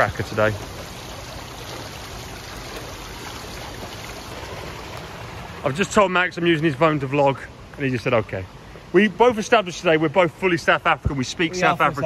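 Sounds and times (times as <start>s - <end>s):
swimming pool water lapping: 0.0s - 12.0s.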